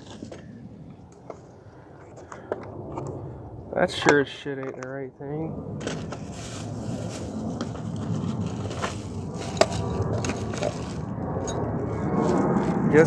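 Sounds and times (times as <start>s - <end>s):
plastic bags rustling: 5.9s - 11.1s.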